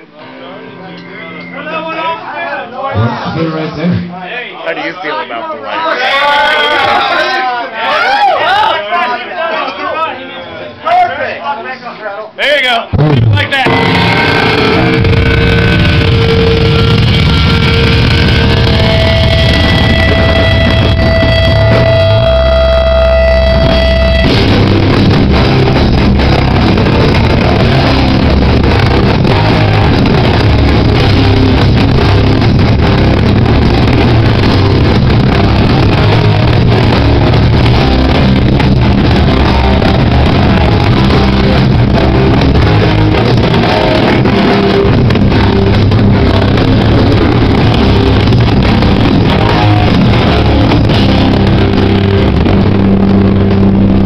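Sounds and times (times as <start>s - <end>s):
loud distorted band music: 12.9s - 54.0s.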